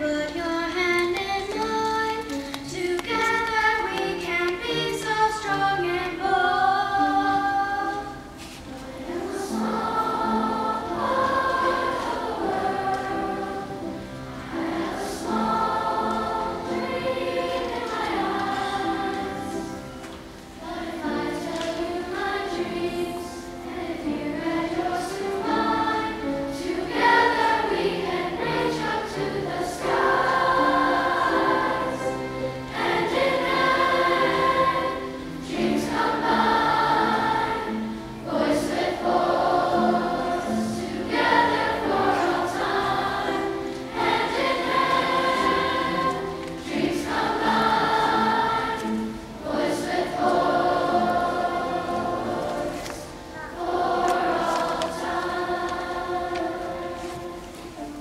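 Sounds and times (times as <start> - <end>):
school choir singing: 3.0 - 58.0.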